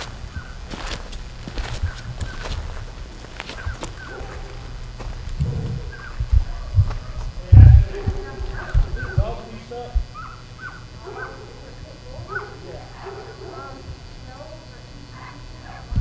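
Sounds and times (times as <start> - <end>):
footsteps on dirt: 0.0 - 9.5
dogs yapping: 1.8 - 5.1, 5.8 - 7.3, 8.0 - 9.4, 10.1 - 14.0
low thumps: 1.8 - 12.4.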